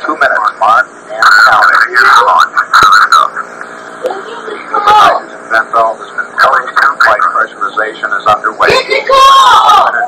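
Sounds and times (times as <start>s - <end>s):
announcer's voice on tv: 0.0s - 3.4s.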